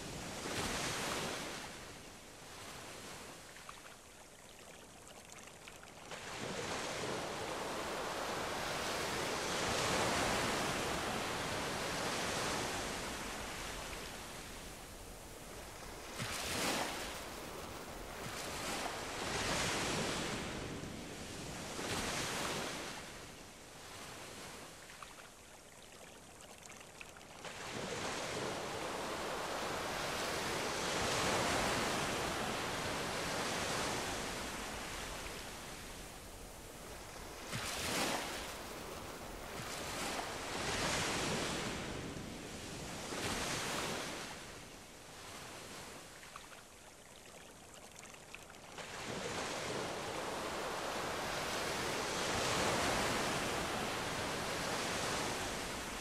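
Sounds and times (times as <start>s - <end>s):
ocean surf washing ashore: 6.1s - 24.8s, 27.4s - 46.2s, 48.8s - 56.0s.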